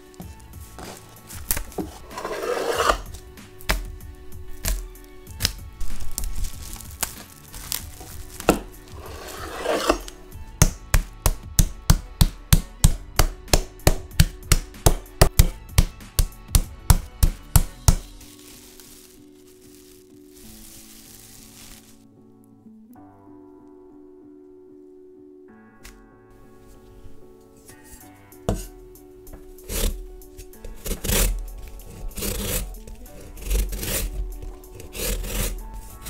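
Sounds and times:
plastic wrap crinkling: 0:00.0 - 0:02.2, 0:03.0 - 0:09.4, 0:18.0 - 0:22.1
soft background music: 0:00.0 - 0:36.0
cleaver pounding meat on wooden board: 0:10.5 - 0:18.1.

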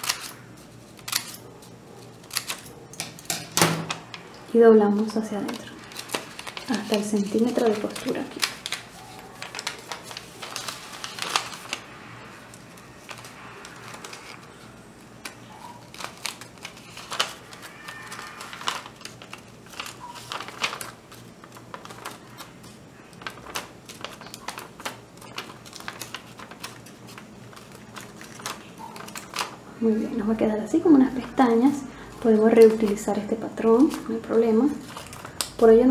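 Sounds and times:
paper being folded and creased: 0:00.0 - 0:04.2, 0:05.0 - 0:30.1, 0:31.1 - 0:35.9.

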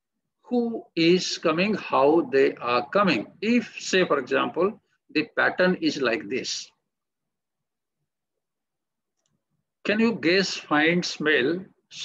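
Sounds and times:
man speaking: 0:00.4 - 0:06.8, 0:09.8 - 0:12.0.

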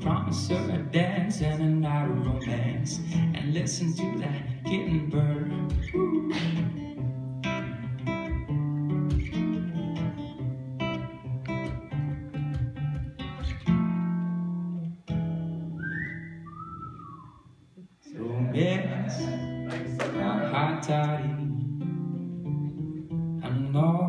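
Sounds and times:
acoustic guitar: 0:00.0 - 0:24.0
person whistling sliding notes: 0:15.8 - 0:17.5.

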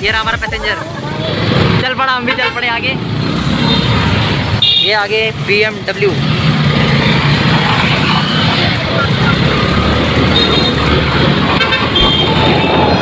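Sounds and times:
motorbike engine and road noise: 0:00.0 - 0:13.0
high horn beeps: 0:11.6 - 0:13.0.

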